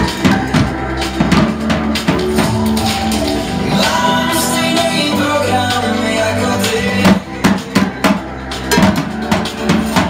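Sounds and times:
drum kit hits: 0:00.0 - 0:04.6, 0:06.9 - 0:10.0
recorded pop-rock song: 0:00.0 - 0:10.0.

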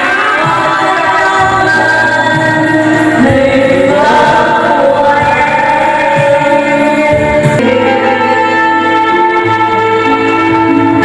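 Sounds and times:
group singing into microphones: 0:00.0 - 0:11.0
loud music: 0:00.0 - 0:11.0.

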